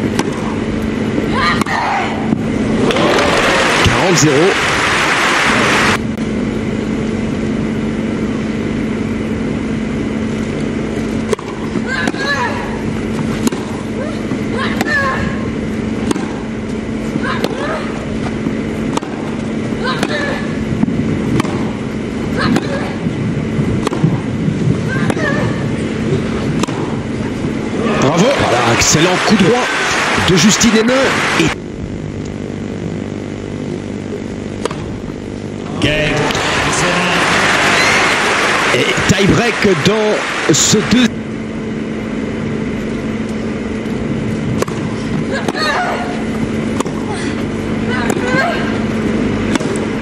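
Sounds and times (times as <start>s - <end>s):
racket hitting tennis ball: 0.0s - 0.6s, 13.2s - 13.8s, 16.0s - 16.5s, 17.1s - 23.0s, 23.8s - 24.3s, 26.4s - 27.6s, 34.6s - 34.9s, 44.6s - 45.8s, 46.7s - 47.1s, 47.9s - 48.4s, 49.5s - 49.9s
low electrical hum: 0.0s - 50.0s
woman grunting: 1.3s - 2.3s, 11.8s - 12.8s, 14.0s - 15.4s, 17.2s - 18.0s, 19.8s - 20.6s, 45.3s - 46.2s, 47.0s - 48.8s.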